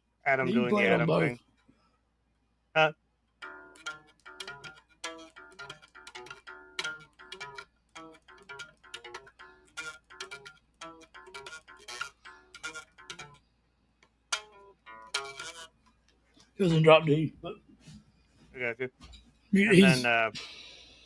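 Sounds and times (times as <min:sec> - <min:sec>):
guitar picked notes: 0:00.3 - 0:01.4, 0:02.8 - 0:13.4, 0:14.3 - 0:16.0.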